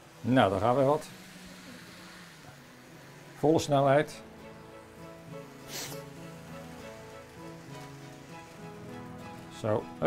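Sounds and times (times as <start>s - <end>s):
model train low hum: 0.0s - 10.0s.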